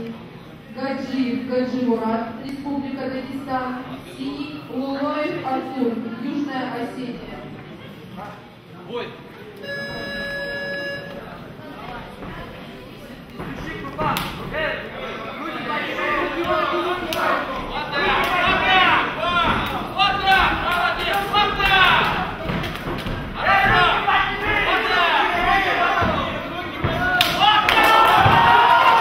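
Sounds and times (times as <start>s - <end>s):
steady buzzer tone: 9.6s - 11.4s
spectators shouting and yelling: 15.4s - 29.0s.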